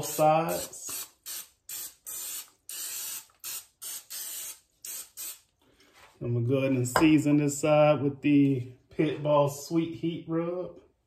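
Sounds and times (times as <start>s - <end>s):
cooking spray hissing: 0.0s - 5.5s.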